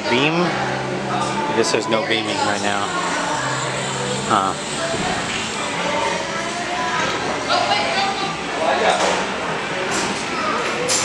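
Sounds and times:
murmur of distant voices: 0.0 - 11.0.

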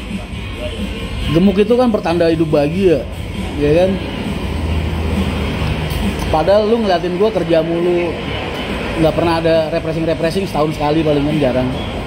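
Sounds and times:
vehicle engine running: 0.0 - 12.0.

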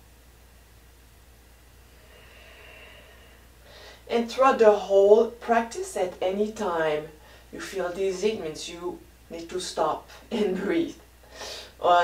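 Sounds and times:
woman breathing: 1.8 - 4.1, 7.2 - 7.5, 11.2 - 11.8.

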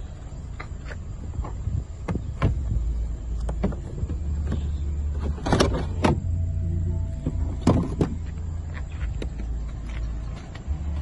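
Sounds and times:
trunk lid motor hum: 0.0 - 11.0
thin whine: 2.8 - 10.8.

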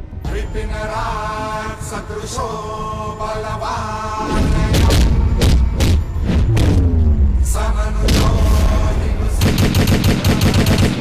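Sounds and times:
deep steady rumble: 3.5 - 10.0
machine-gun fire: 9.4 - 11.0.

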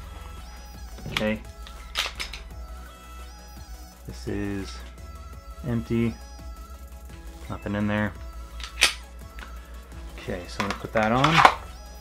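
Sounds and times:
background music: 0.0 - 12.0
pistol metallic click: 1.1 - 2.5, 8.6 - 9.5.

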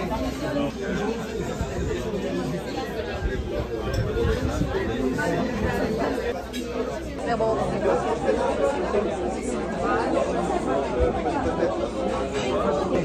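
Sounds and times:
restaurant chatter: 0.0 - 13.0.

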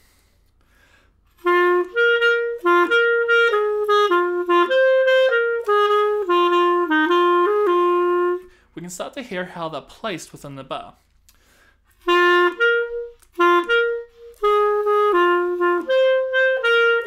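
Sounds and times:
solo clarinet jazz waltz: 1.3 - 8.6, 11.9 - 17.0.

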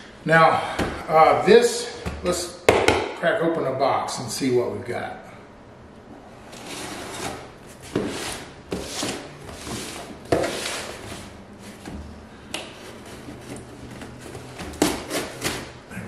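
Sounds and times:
knife slitting packing tape: 13.0 - 15.8.

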